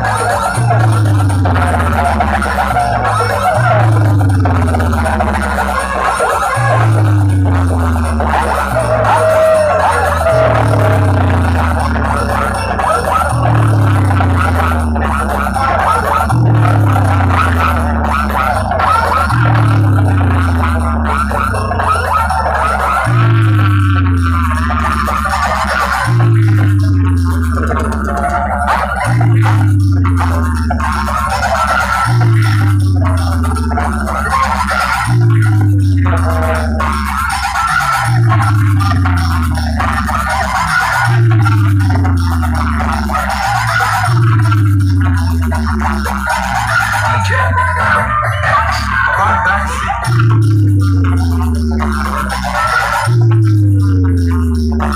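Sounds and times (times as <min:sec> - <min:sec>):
loud bass-heavy dance music: 0:00.0 - 0:54.9
deep sliding bass note: 0:16.2 - 0:21.9, 0:22.9 - 0:31.2, 0:35.0 - 0:37.2, 0:50.0 - 0:52.4, 0:53.0 - 0:54.9.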